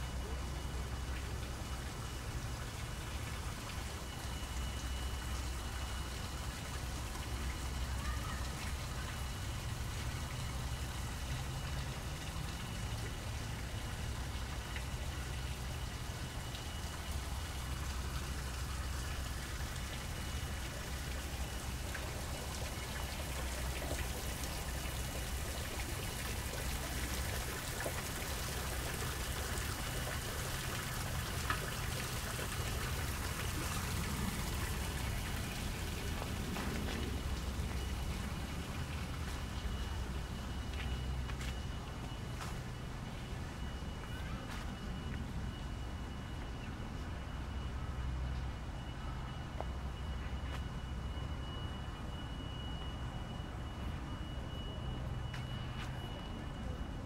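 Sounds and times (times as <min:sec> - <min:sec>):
cascade dripping into pool: 0:00.0 - 0:57.0
stream water trickling and splashing: 0:00.0 - 0:57.0.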